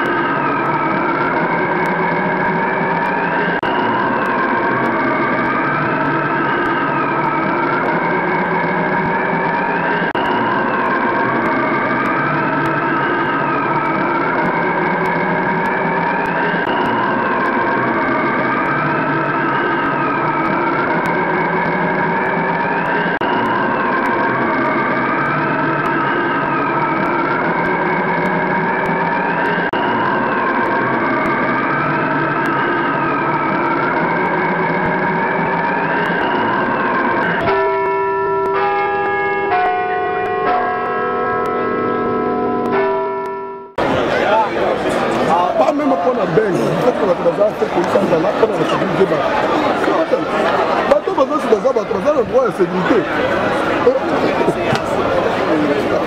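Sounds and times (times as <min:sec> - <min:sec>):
siren wailing: 0:00.0 - 0:56.0.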